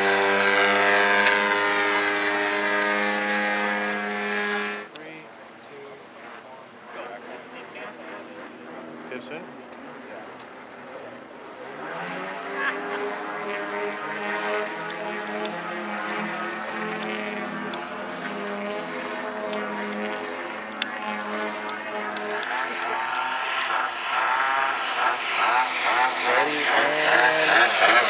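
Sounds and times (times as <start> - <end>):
model plane engines droning: 0.0 - 28.0.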